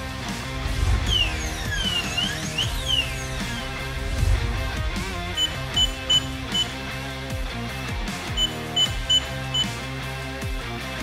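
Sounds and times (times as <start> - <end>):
background music: 0.0 - 11.0
keypad beeps: 5.4 - 6.8, 8.3 - 9.8.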